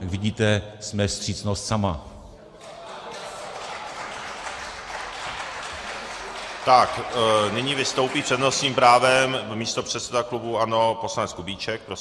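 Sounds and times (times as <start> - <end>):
applause: 2.6 - 9.5.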